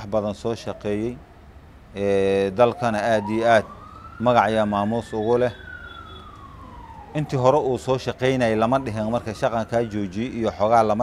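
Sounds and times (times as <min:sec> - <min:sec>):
man speaking: 0:00.0 - 0:01.2, 0:02.0 - 0:05.6, 0:07.2 - 0:11.0
distant siren wailing: 0:00.3 - 0:01.5, 0:02.1 - 0:11.0.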